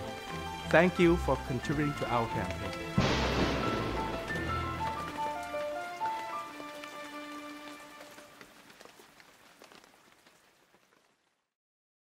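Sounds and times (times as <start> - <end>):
gentle melodic music: 0.0 - 8.4
rain pattering: 0.0 - 11.6.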